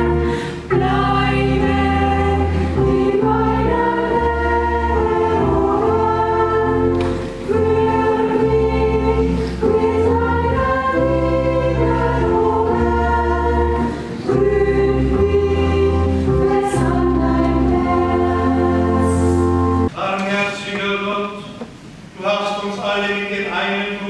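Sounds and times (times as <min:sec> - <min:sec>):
choir singing a hymn: 0:00.0 - 0:19.9.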